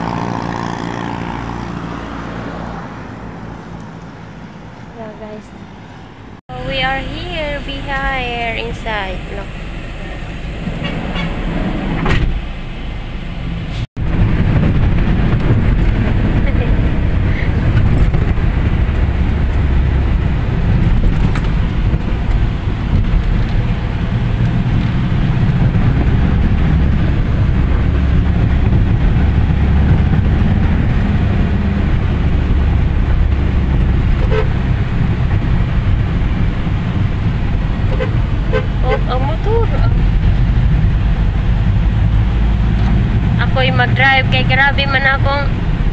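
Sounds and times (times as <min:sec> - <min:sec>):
van engine and road rumble: 0:00.0 - 0:45.9.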